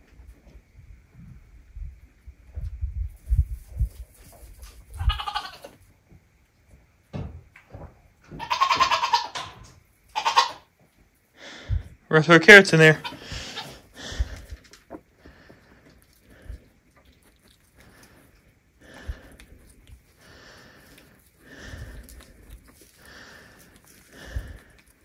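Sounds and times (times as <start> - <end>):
goats snuffling: 3.1 - 5.9, 8.3 - 25.0.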